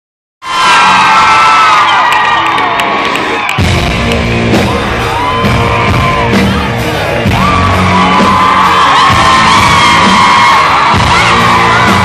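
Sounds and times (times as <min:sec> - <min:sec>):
crowd screaming and whooping: 0:00.4 - 0:12.0
rock band playing: 0:00.5 - 0:12.0.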